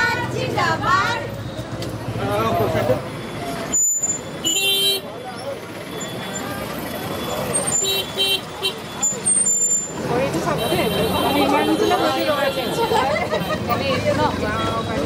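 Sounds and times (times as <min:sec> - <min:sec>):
street noise: 0:00.0 - 0:15.0
voices: 0:00.0 - 0:15.0
vehicle horn tooting: 0:04.4 - 0:05.2, 0:10.5 - 0:13.7.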